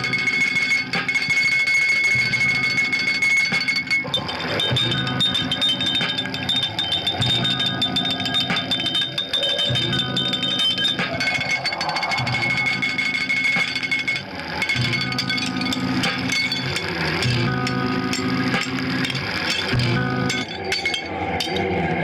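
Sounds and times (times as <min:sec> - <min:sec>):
sustained high electronic tones: 0:00.0 - 0:21.6
crackling electronic noise music: 0:00.0 - 0:22.0
low electronic throbs: 0:02.1 - 0:20.6.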